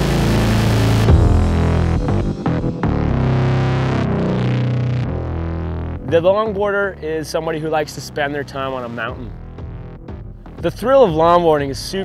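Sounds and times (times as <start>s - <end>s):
distorted electric guitar: 0.0s - 10.8s.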